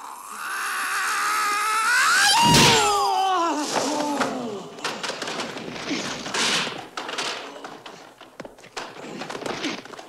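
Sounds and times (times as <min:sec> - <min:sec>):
man's falsetto cry: 0:00.0 - 0:04.4.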